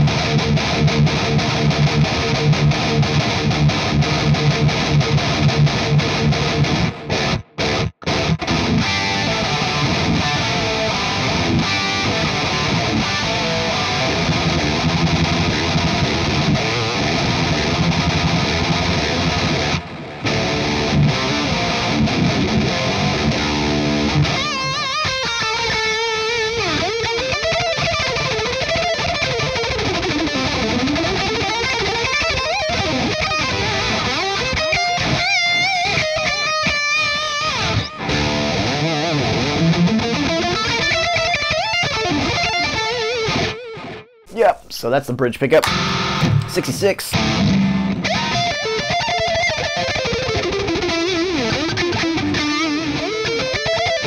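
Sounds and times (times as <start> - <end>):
distorted electric guitar: 0.0 - 54.0.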